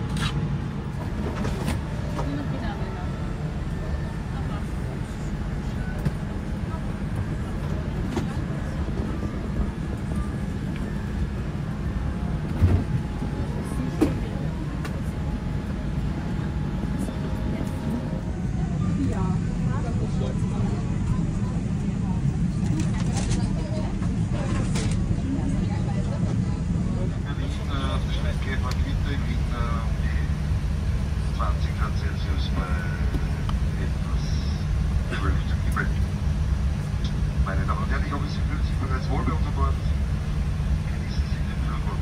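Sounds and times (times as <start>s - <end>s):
aircraft cabin hum: 0.0s - 42.0s
murmur of passengers talking: 0.0s - 42.0s.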